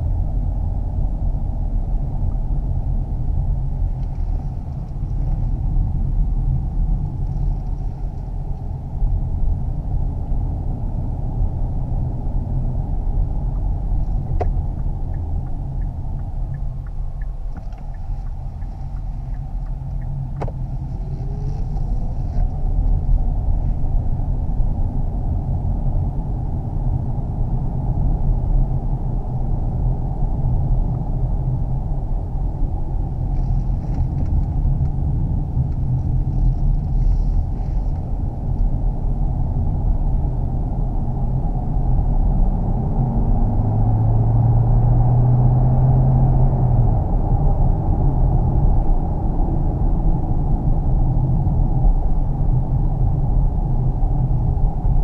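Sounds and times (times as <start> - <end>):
low hum: 0.0 - 55.0
road and tyre rumble: 0.0 - 55.0.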